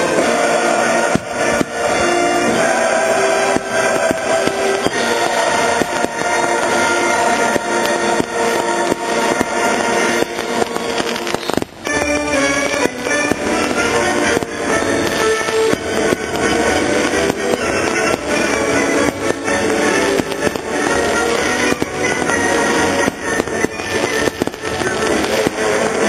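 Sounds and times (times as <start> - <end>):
fireworks bursting and crackling: 0.0 - 26.0
loud music: 0.0 - 26.0.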